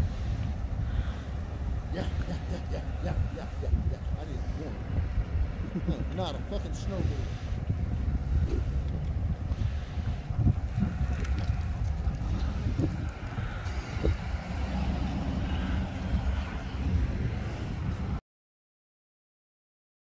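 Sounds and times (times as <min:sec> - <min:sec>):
wind buffeting microphone: 0:00.0 - 0:18.2
suv engine pulling away: 0:10.8 - 0:18.0.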